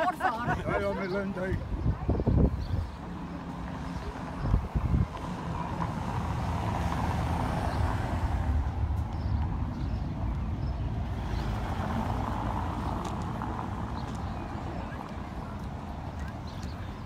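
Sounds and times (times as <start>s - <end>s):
road traffic passing: 0.0s - 17.0s.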